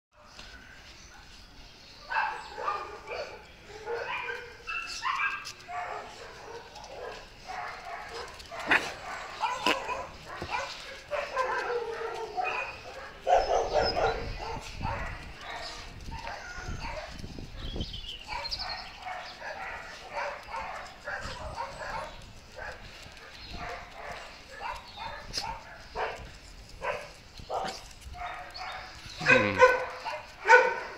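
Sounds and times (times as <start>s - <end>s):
small dogs barking: 2.0s - 30.9s.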